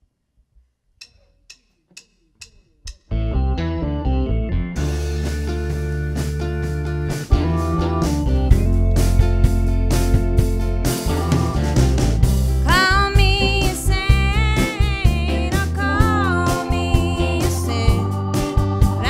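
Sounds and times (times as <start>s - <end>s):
bass guitar: 2.9s - 19.0s
keyboard: 3.1s - 19.0s
electric guitar: 3.2s - 19.0s
acoustic guitar: 4.8s - 19.0s
drum kit: 4.8s - 19.0s.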